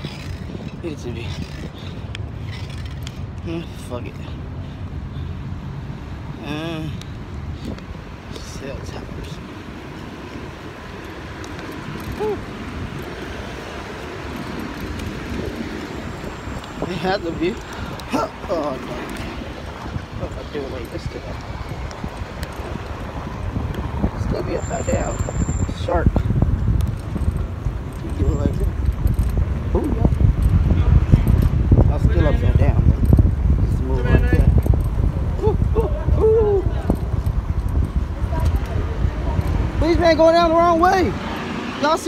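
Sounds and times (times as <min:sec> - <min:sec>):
low city rumble: 0:00.0 - 0:42.0
wind buffeting microphone: 0:00.0 - 0:42.0.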